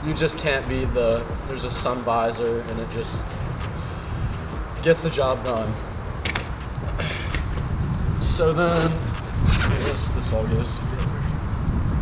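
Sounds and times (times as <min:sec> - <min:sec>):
wind rumble on microphone: 0:02.8 - 0:12.0.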